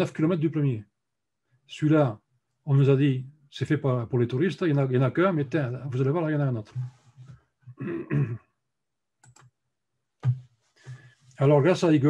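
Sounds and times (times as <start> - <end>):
man speaking: 0.0 - 0.8, 1.7 - 7.0, 11.4 - 12.0
computer clicks: 9.2 - 9.5.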